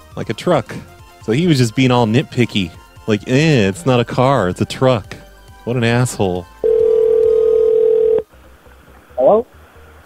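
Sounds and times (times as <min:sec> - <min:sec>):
telephone ringback tone: 0:06.6 - 0:08.2.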